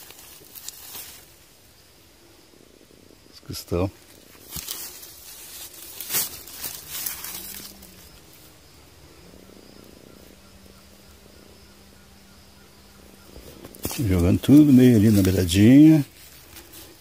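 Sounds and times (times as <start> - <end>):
rustling and scraping of stone: 0.0 - 1.3, 4.0 - 8.4, 13.3 - 17.0
faint steady hum: 0.0 - 17.0.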